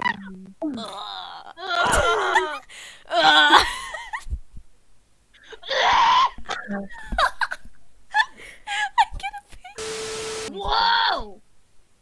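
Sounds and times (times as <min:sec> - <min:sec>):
people groaning: 0:00.7 - 0:03.8, 0:05.6 - 0:06.8, 0:10.5 - 0:11.3.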